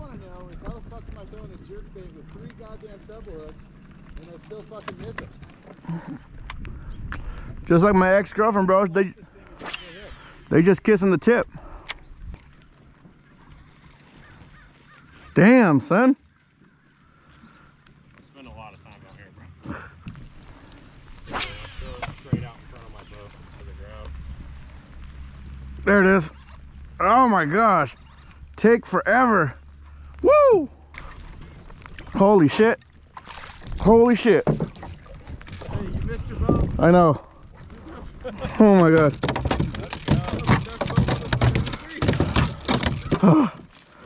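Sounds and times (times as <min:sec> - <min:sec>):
gear clicking and rustling on kayak: 0:00.0 - 0:09.6, 0:10.4 - 0:44.0.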